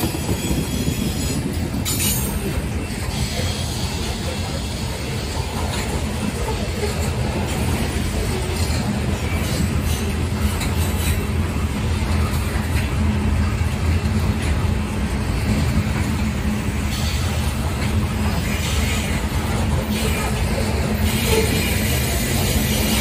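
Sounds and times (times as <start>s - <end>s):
freight train wheels rumbling: 0.0s - 23.0s.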